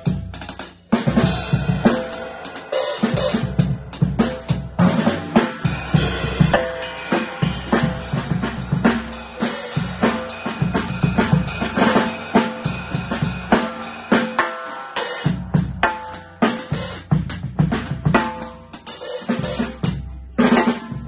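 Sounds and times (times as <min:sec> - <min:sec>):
acoustic drum kit groove: 0:00.0 - 0:21.0.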